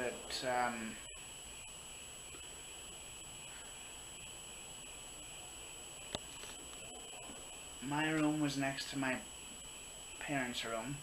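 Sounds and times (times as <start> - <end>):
faint high-pitched whine: 0.0 - 11.0
steady background hiss: 0.0 - 11.0.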